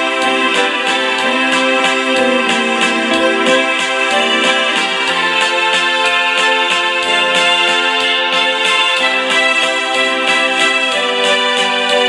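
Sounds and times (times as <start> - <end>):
electric guitar: 0.0 - 12.0
keyboard chords: 0.0 - 12.0
steady beat: 0.0 - 12.0.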